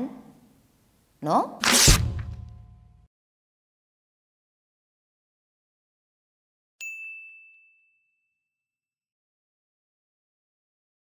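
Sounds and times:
high bell ding: 6.8s - 8.8s.

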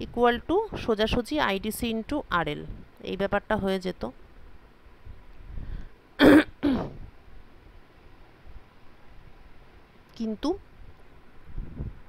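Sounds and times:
person coughing: 6.2s - 7.0s.

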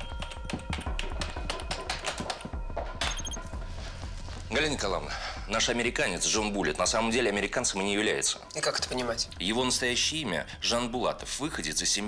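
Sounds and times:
low background music: 0.0s - 12.0s.

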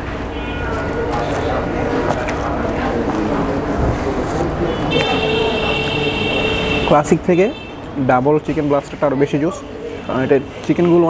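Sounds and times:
restaurant low rumble: 0.0s - 10.0s
indistinct voices: 0.0s - 11.0s.

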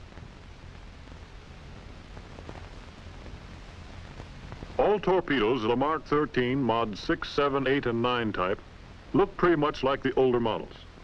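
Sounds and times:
faint crackles: 0.0s - 11.0s
film soundtrack hiss: 0.0s - 11.0s.

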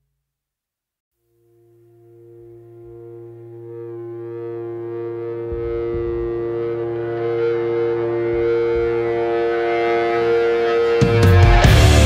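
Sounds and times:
blues rock sustained note: 1.2s - 12.0s.

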